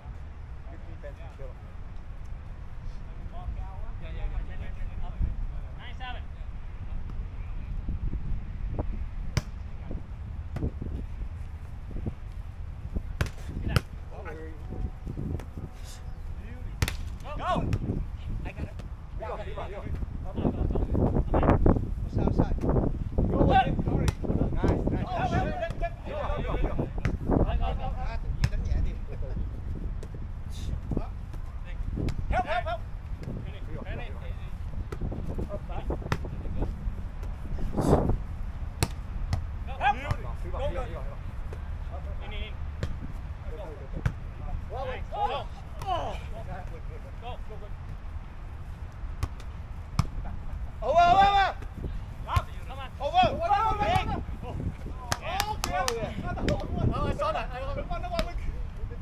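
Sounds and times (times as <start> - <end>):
wind rumble on microphone: 0.0 - 59.0
volleyball being hit: 16.8 - 17.9
players shouting: 24.8 - 26.8, 39.6 - 41.0, 44.6 - 47.4, 50.6 - 58.5.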